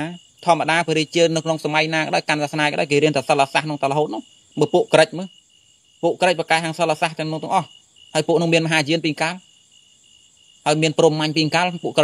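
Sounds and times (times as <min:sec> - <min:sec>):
man preaching: 0:00.0 - 0:05.3, 0:06.0 - 0:09.4, 0:10.6 - 0:12.0.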